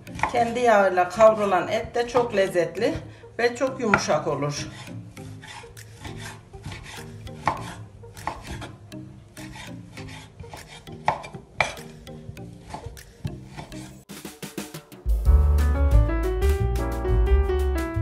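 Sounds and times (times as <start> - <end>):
soft background music: 0.0 - 18.0
knife chopping on wooden board: 3.9 - 8.8, 9.4 - 12.0
loud piano music: 15.0 - 18.0.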